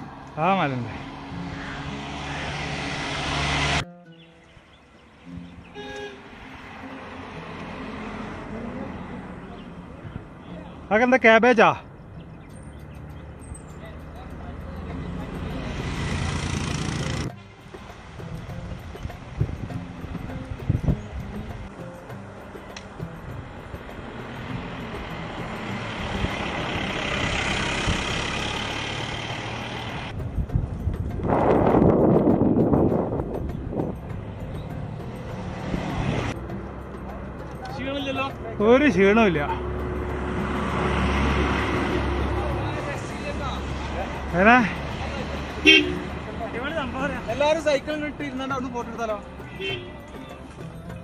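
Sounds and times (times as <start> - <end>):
road noise: 0.0 - 51.0
wind on camera microphone: 30.2 - 34.0.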